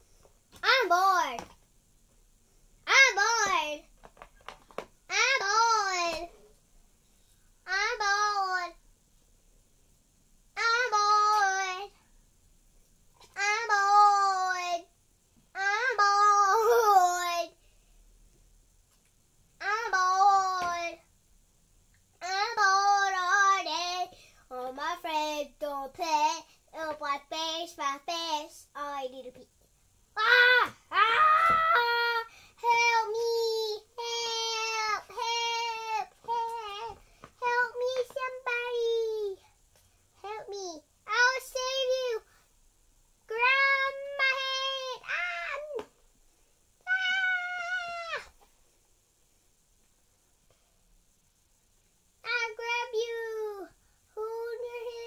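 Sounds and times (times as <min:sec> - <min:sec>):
child singing: 0:00.6 - 0:01.5, 0:02.9 - 0:03.8, 0:05.1 - 0:06.3, 0:07.7 - 0:08.8, 0:10.6 - 0:12.0, 0:13.3 - 0:14.9, 0:15.6 - 0:17.6, 0:19.6 - 0:21.0, 0:22.2 - 0:29.5, 0:30.2 - 0:39.4, 0:40.2 - 0:42.3, 0:43.3 - 0:45.9, 0:52.2 - 0:55.0
child imitating cat meows: 0:30.2 - 0:33.2, 0:43.3 - 0:45.9, 0:46.8 - 0:48.4.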